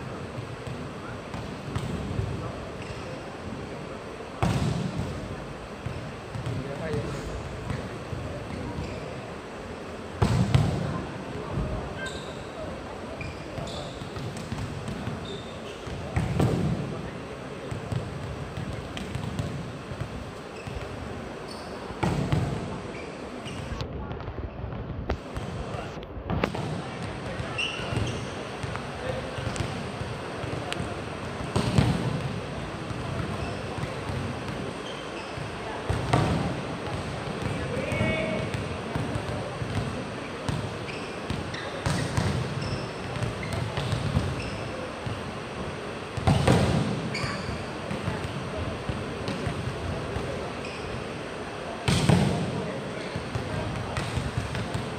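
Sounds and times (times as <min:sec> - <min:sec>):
murmur of crowd voices: 0:00.0 - 0:54.9
volleyballs smacking the court: 0:04.4 - 0:05.2, 0:10.2 - 0:11.8, 0:13.5 - 0:17.0, 0:17.6 - 0:21.0, 0:21.9 - 0:22.8, 0:24.8 - 0:34.7, 0:35.4 - 0:40.7, 0:41.3 - 0:44.4, 0:46.2 - 0:50.4, 0:51.8 - 0:54.9.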